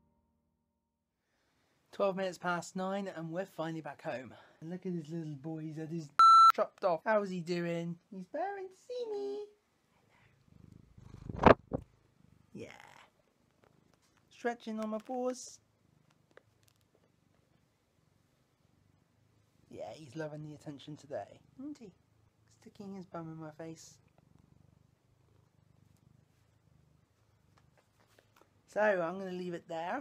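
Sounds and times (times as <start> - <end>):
cat purring: 10.0 - 30.0.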